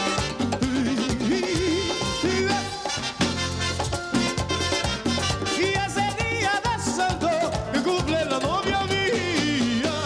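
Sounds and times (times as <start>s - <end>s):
live merengue band: 0.0s - 10.0s.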